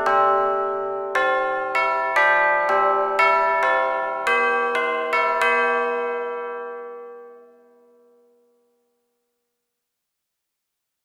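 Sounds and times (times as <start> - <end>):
bell-like jingle notes: 0.0 - 8.4.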